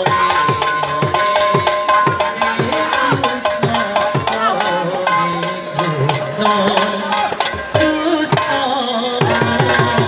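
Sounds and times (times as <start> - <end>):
hand drums played: 0.0 - 10.0.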